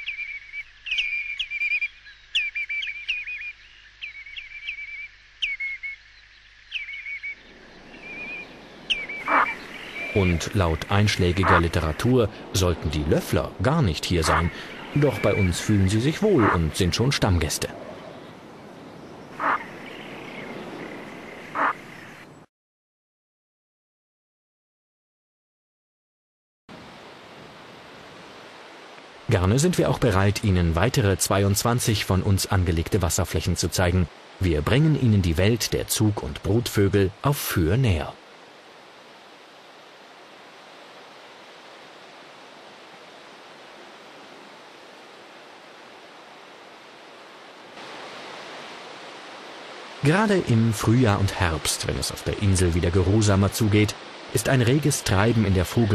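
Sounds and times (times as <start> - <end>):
distant bird calls: 0.0 - 22.5
harsh waterbird calls: 6.6 - 22.5
steady hiss: 7.6 - 17.8, 26.7 - 55.9.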